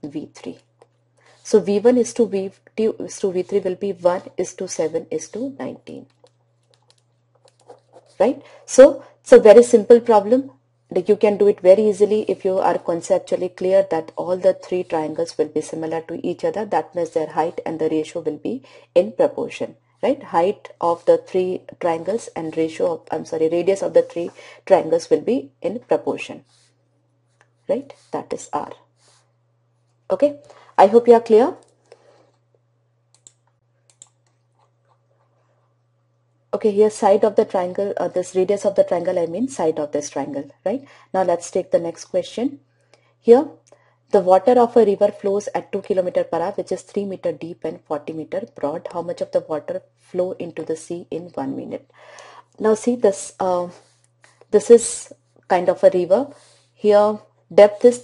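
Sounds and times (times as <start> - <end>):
low electrical hum: 0.0 - 58.0.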